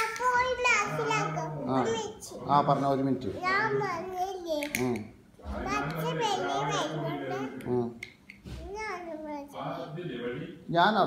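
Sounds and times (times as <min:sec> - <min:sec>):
toddler talking: 0:00.0 - 0:02.4, 0:03.3 - 0:07.7, 0:08.5 - 0:09.9.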